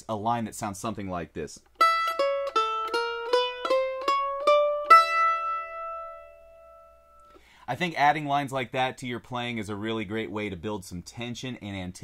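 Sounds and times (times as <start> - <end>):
mandolin picked single notes: 1.6 - 7.5.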